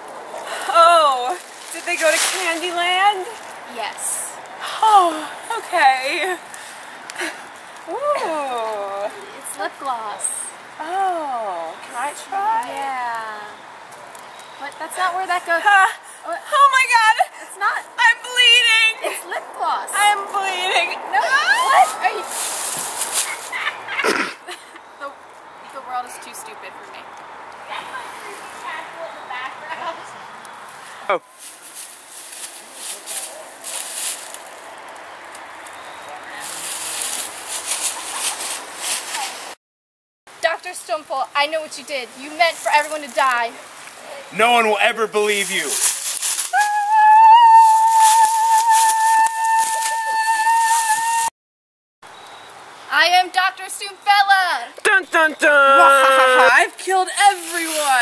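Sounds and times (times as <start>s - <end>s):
high-pitched scream: 46.5s - 51.3s, 55.4s - 56.6s.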